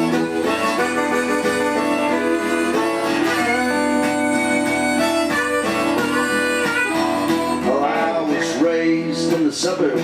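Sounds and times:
acoustic guitar: 0:00.0 - 0:10.0
electric guitar: 0:00.0 - 0:10.0.

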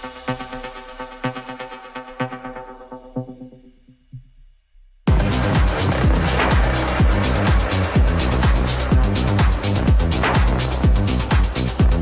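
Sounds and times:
bass line: 0:00.0 - 0:12.0
minimal techno track: 0:00.0 - 0:12.0
four-on-the-floor kick drum: 0:03.2 - 0:12.0
busy hi-hats: 0:05.1 - 0:12.0.

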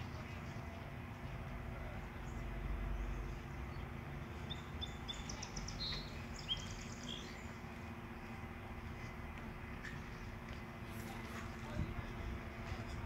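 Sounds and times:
low outdoor rumble: 0:00.0 - 0:13.0
songbird chirping and trilling: 0:02.0 - 0:08.4.

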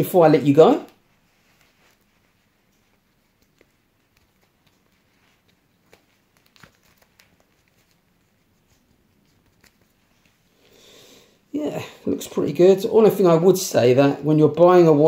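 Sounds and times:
watch strap clicks and rustles: 0:02.7 - 0:08.1.

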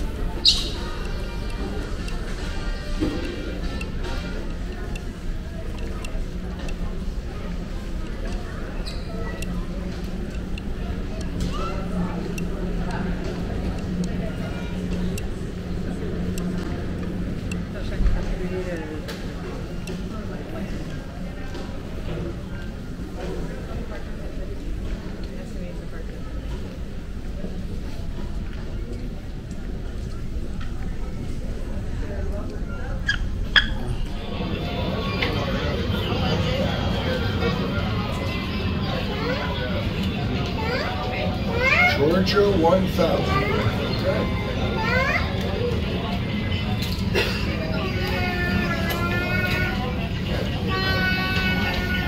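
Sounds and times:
children chattering and calling out: 0:00.0 - 0:52.0
indistinct voices of travellers: 0:00.0 - 0:52.0
low background hum: 0:00.0 - 0:52.0.

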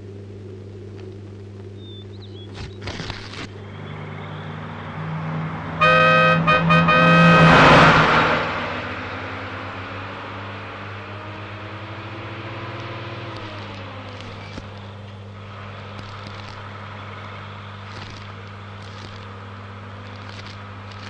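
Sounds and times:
bus engine humming: 0:00.0 - 0:21.0.

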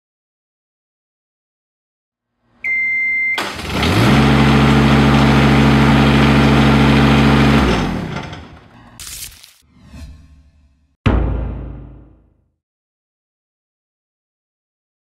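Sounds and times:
short high beep: 0:02.6 - 0:03.4
engine starting and running: 0:03.3 - 0:09.0.

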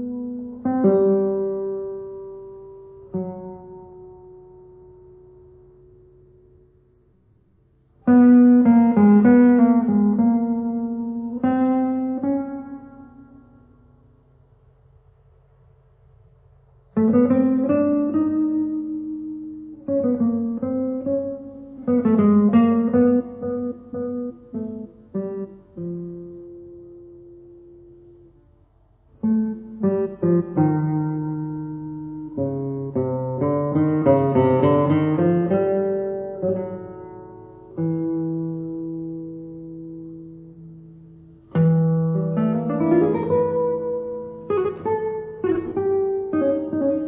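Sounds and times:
guitar note ringing: 0:16.9 - 0:47.0.

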